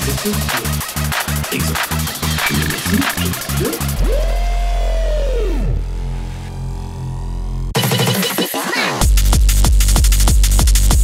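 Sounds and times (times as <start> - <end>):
deep bass drone: 0.0 - 7.8
synth tone sliding in pitch: 2.4 - 6.5.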